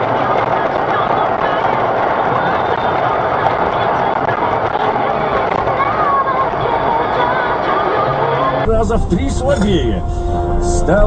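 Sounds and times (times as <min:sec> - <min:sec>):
road noise inside vehicle: 0:00.0 - 0:11.0.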